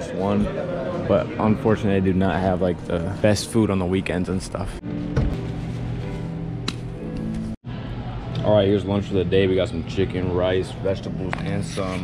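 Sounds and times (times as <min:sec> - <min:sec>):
background music with low notes: 0:02.4 - 0:10.2.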